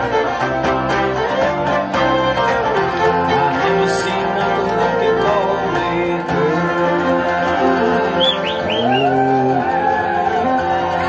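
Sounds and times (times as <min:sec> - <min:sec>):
fiddle: 0:00.0 - 0:11.0
strummed acoustic guitar: 0:00.0 - 0:11.0
flute: 0:06.7 - 0:11.0.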